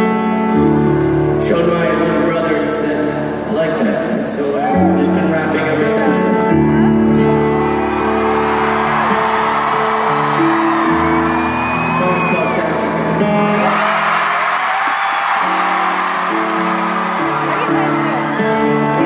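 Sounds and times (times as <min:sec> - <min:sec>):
stage piano chords: 0:00.0 - 0:19.0
arena crowd cheering and whooping: 0:04.5 - 0:05.2, 0:06.8 - 0:19.0.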